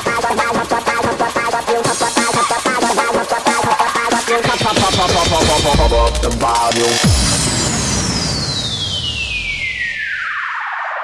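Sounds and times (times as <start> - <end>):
synthesizer sweep gliding downward: 3.8 - 11.0.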